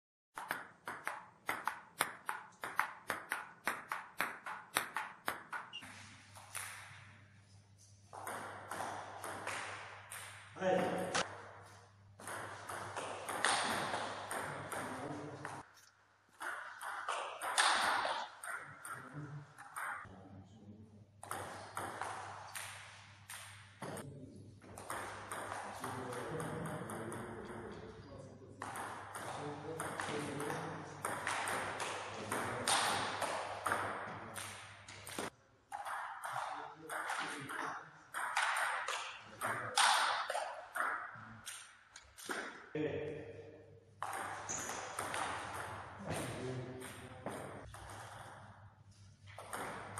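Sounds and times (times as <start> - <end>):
ball bouncing on table: 0.4 - 5.8, 21.2 - 24.0, 44.0 - 48.4, 49.3 - 49.9
ball clicking off paddles: 0.4 - 7.1.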